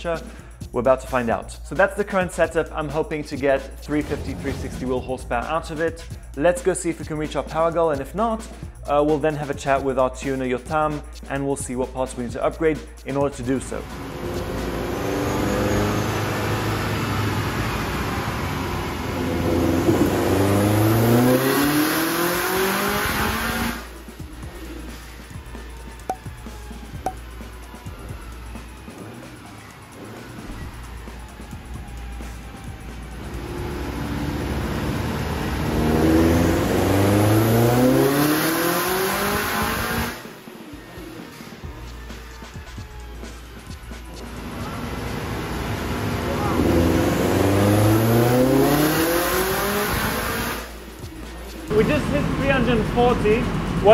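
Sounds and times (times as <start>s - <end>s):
engine revving on a dyno: 13.8s - 24.4s, 32.5s - 40.4s, 44.2s - 50.9s.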